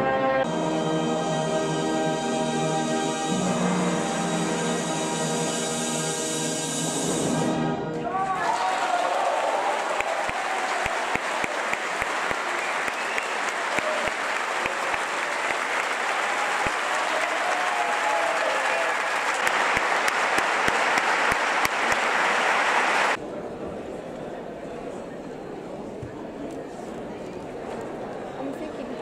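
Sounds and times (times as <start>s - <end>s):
audience applauding: 8.1s - 23.2s.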